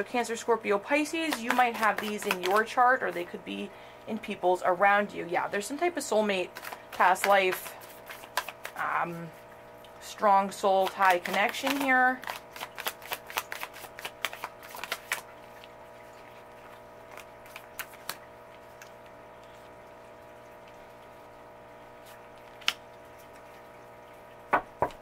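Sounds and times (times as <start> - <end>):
faint steady hum: 0.0 - 25.0
cards tapping down: 1.2 - 2.7, 6.5 - 8.8, 10.8 - 15.3, 22.5 - 22.8
cards shuffling: 1.2 - 3.2, 6.5 - 8.9, 10.7 - 19.7, 22.0 - 23.4.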